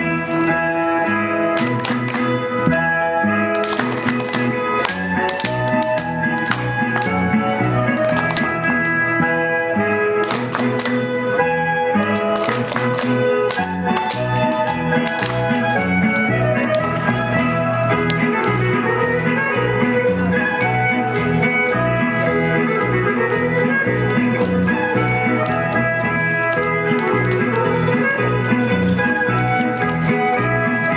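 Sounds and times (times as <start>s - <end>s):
folk dance music: 0.0s - 30.9s
sharp handclaps: 1.5s - 2.4s, 3.5s - 7.2s, 7.9s - 8.5s, 10.2s - 11.2s, 12.0s - 18.8s.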